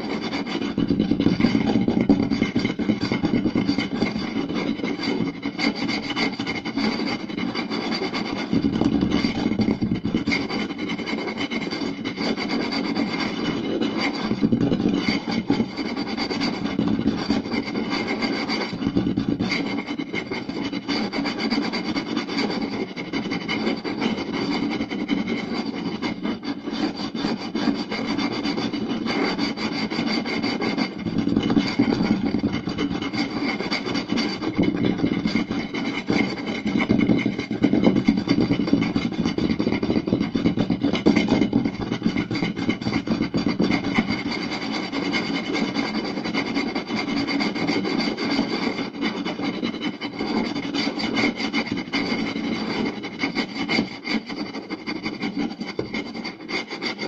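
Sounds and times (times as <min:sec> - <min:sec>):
fingers scratching wooden plate: 0:00.0 - 0:57.0.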